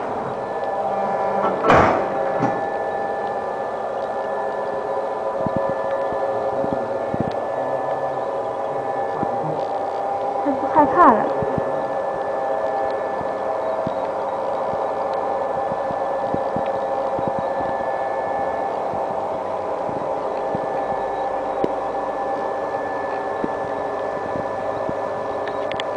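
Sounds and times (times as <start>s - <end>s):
factory machinery humming: 0.0s - 25.9s.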